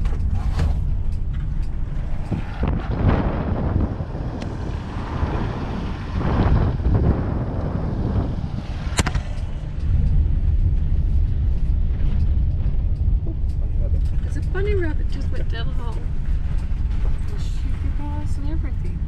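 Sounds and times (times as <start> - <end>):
car engine and tyres rumbling: 0.0 - 19.0
sharp click: 8.8 - 10.2.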